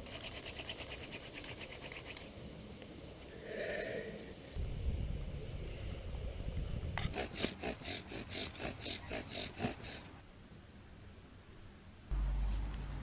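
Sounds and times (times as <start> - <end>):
low rumble: 4.4 - 7.0
bow drill rasping on wood: 7.0 - 10.2.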